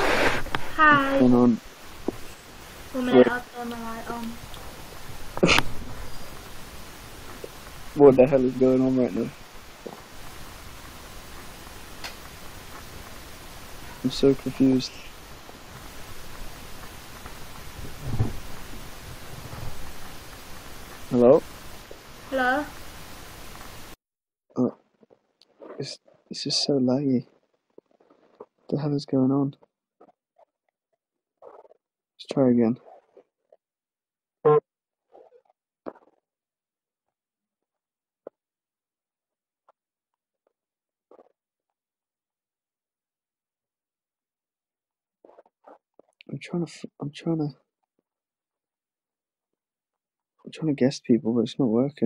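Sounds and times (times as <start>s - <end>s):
background hiss: 0.0s - 24.0s, 25.5s - 27.2s, 28.0s - 29.6s, 32.2s - 32.8s, 46.2s - 47.5s, 50.5s - 52.0s
faint clicks: 9.8s - 13.9s.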